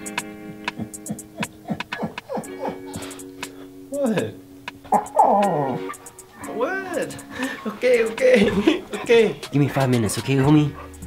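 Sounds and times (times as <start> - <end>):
dog whining: 0.8 - 3.2, 4.9 - 6.5.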